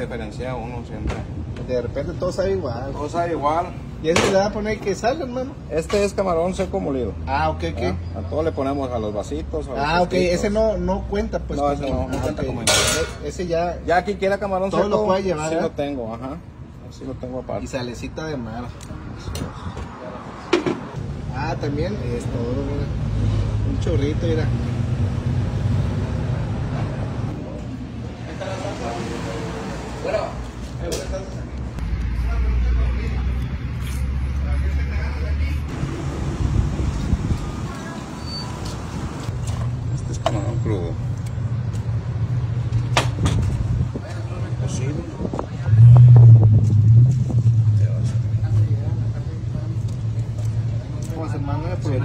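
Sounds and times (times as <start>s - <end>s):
street traffic rumble: 0.0s - 52.0s
vehicle passing: 18.9s - 39.9s.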